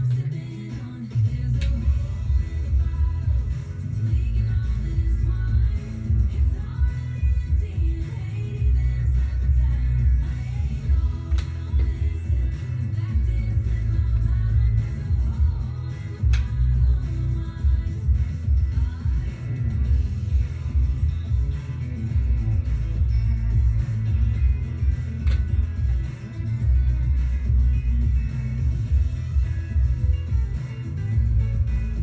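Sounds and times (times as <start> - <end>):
pop-country song on radio: 0.0 - 32.0.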